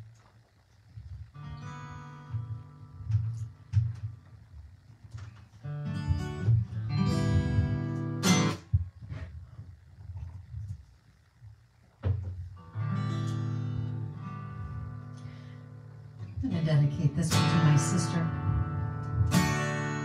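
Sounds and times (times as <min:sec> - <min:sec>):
acoustic guitar strumming chords: 0:01.3 - 0:04.4, 0:05.1 - 0:09.2, 0:12.1 - 0:20.0.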